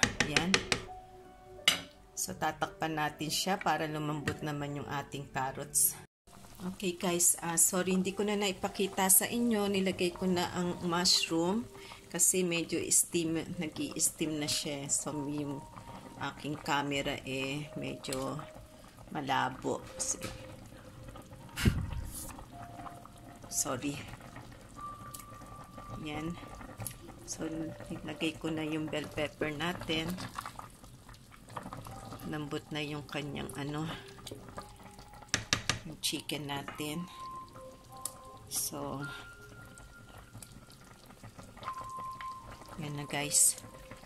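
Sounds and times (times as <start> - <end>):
soup simmering in a pot: 6.3 - 44.0.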